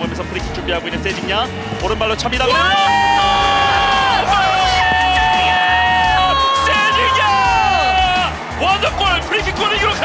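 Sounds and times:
background music: 0.0 - 10.0
commentator shouting goal: 2.4 - 10.0
stadium crowd cheering: 2.5 - 10.0.

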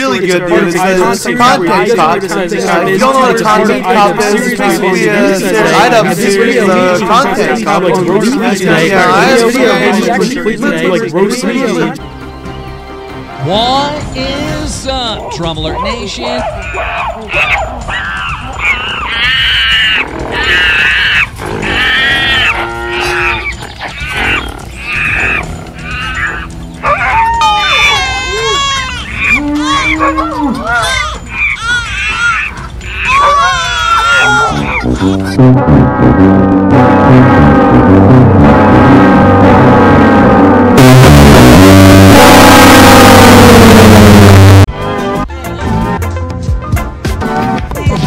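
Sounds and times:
background music: 0.0 - 48.0
high-pitched squealing cries: 16.4 - 35.1
loud distorted guitar music: 34.8 - 44.7.

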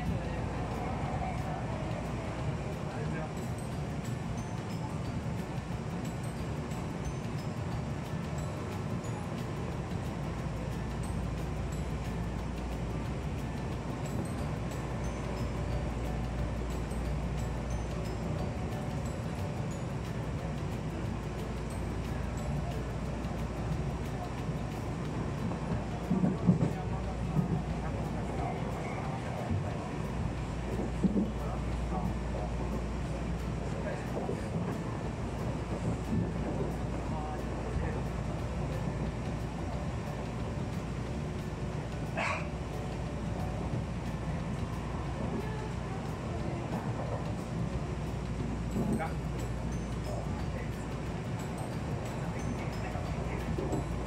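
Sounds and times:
train rumbling inside carriage: 0.0 - 54.0.

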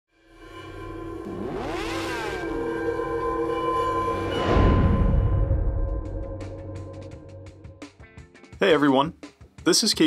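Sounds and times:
sweeping tones: 0.1 - 7.9
synth drone: 0.1 - 7.9.

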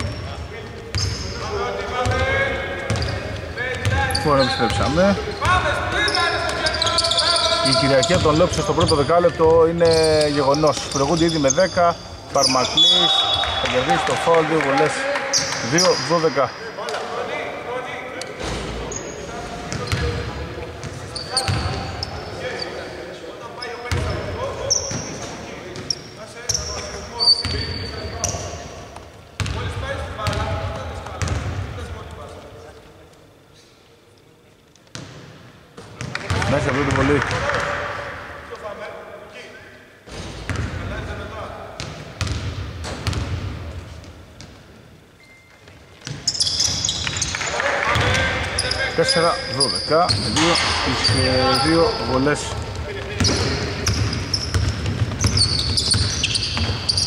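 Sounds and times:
sneakers squeaking: 0.0 - 14.0, 15.3 - 16.1, 18.3 - 32.0, 40.1 - 41.0, 41.8 - 57.0
basketball bouncing: 41.8 - 43.6, 52.7 - 56.9.

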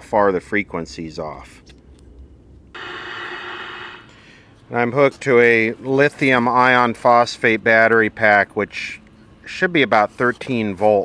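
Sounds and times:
radio static hiss: 2.8 - 4.2.

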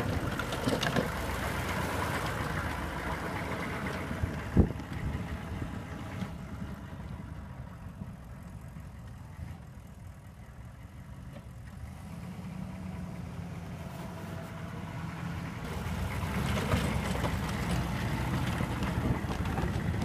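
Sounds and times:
plow pushing snow: 0.0 - 20.0
truck engine running: 0.0 - 20.0.

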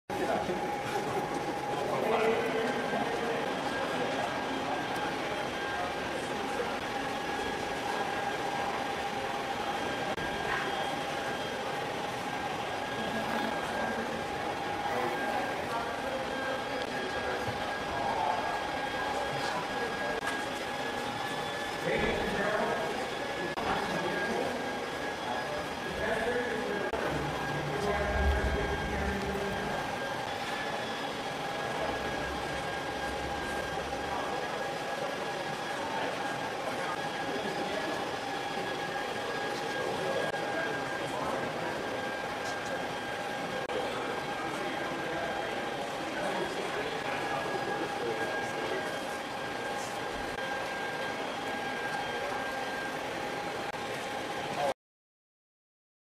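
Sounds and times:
constant hum: 0.1 - 54.7.

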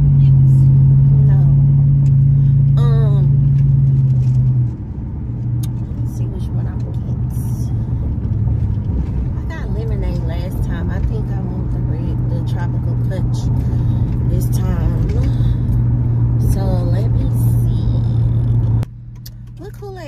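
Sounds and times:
engine drone: 0.0 - 20.0
road rumble: 0.0 - 20.0.

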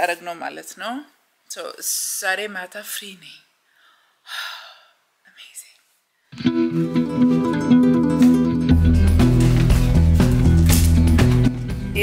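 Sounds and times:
woman speaking: 0.0 - 3.5.

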